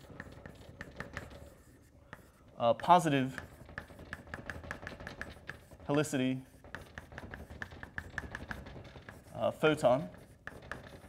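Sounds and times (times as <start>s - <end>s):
chalk tapping on blackboard: 0.0s - 11.0s.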